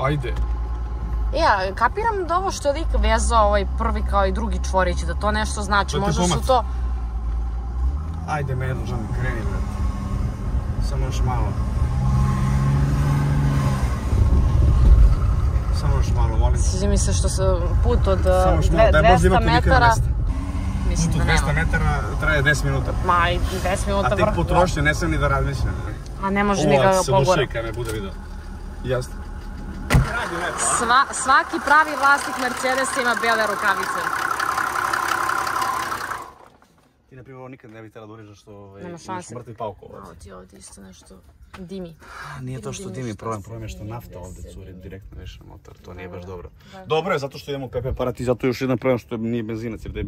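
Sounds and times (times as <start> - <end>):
car engine idling: 0.0 - 11.8, 14.0 - 37.0
rumbling and thumping of flat tyre: 0.0 - 37.0, 44.5 - 46.4
car cabin hum: 26.3 - 36.5.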